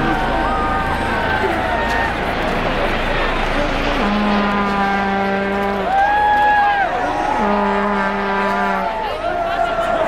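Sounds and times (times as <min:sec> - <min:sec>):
low horn blasts: 0:00.0 - 0:09.3
street crowd hubbub: 0:00.0 - 0:10.0
higher held horn tone: 0:03.4 - 0:09.1.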